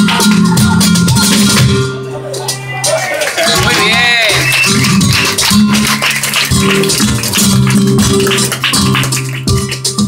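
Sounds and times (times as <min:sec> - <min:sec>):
cajon percussion: 0:00.0 - 0:10.0
flamenco guitar: 0:00.0 - 0:10.0.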